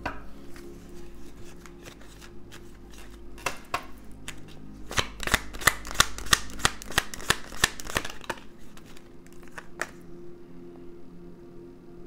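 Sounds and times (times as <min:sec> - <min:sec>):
cards being shuffled: 0:00.6 - 0:10.0.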